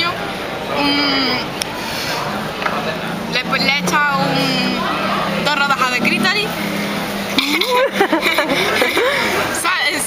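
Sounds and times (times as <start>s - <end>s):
steady low hum: 0.5s - 9.5s.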